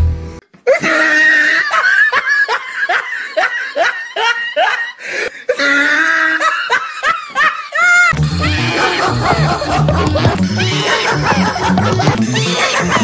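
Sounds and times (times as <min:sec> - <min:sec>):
person giggling: 0:06.3 - 0:13.0.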